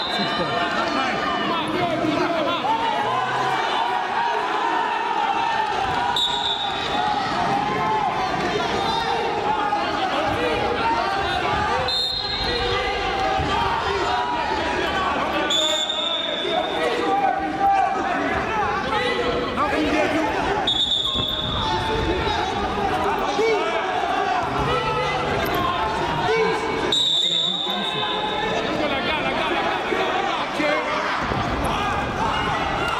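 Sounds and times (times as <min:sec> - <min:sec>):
crowd of voices calling out: 0:00.0 - 0:32.9.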